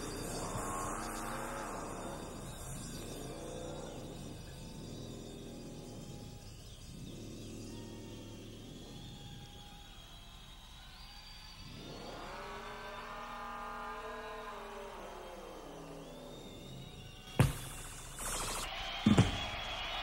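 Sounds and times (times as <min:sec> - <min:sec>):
electronic tones sweeping upward: 0:00.0 - 0:18.7.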